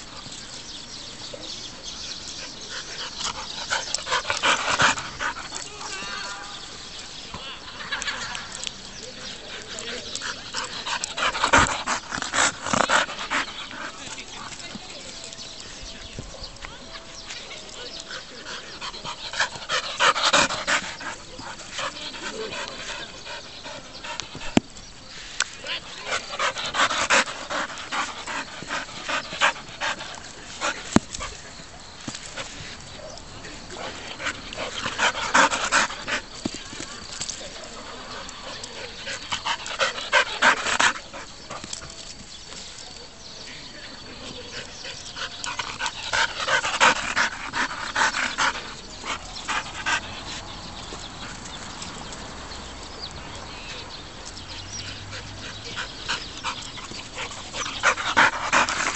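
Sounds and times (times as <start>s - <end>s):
dog panting: 1.8s - 5.9s, 7.7s - 16.0s, 16.8s - 25.0s, 25.6s - 42.2s, 43.8s - 52.2s, 53.6s - 58.9s.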